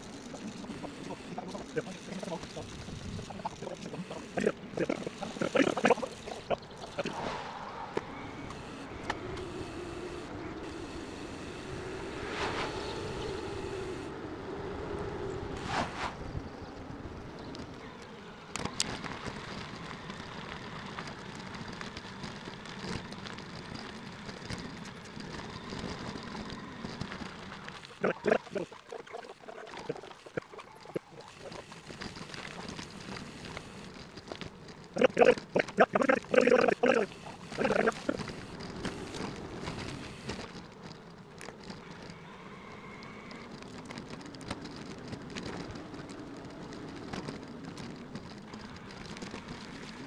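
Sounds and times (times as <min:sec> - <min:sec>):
wind and road noise: 0:00.0 - 0:50.0
garbled speech-like bursts: 0:00.8 - 0:07.2, 0:27.9 - 0:31.6, 0:35.0 - 0:38.3.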